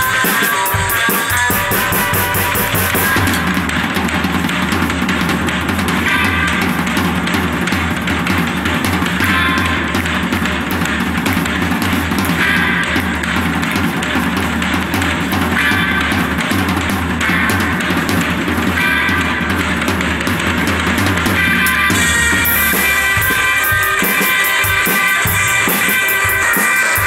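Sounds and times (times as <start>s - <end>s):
drum kit playing: 0.0s - 27.0s
rock music with guitar: 0.0s - 27.0s.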